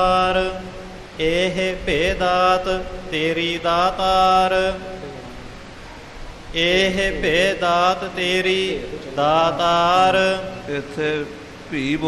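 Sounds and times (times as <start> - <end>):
man chanting melodically: 0.0 - 5.6, 6.5 - 12.0.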